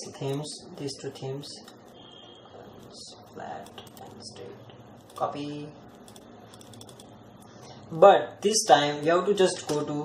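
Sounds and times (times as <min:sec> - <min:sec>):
keyboard and mouse clicks: 0:06.0 - 0:07.5.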